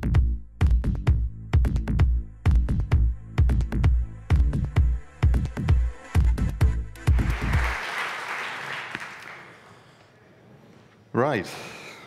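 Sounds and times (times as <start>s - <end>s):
electronic music bass notes: 0.0s - 7.5s
audience applauding: 7.0s - 10.0s.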